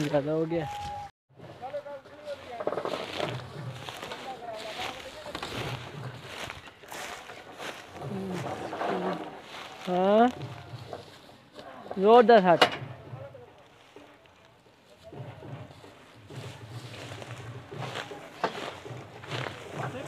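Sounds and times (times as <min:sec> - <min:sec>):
men talking and calling out: 0:00.0 - 0:20.0.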